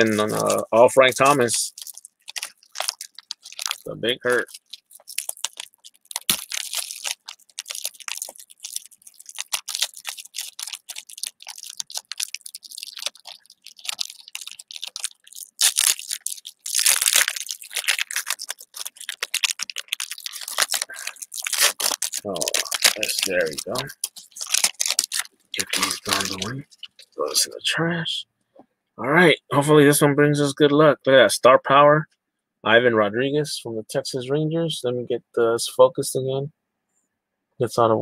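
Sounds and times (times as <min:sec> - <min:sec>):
foil wrapper crinkling and tearing: 0:00.0 - 0:27.4.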